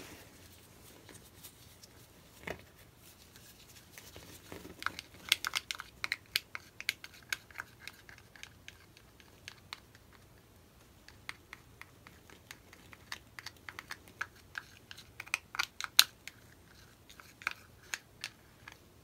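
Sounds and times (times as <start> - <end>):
plastic cup clicks and crinkles: 4.3 - 10.1, 11.1 - 18.8.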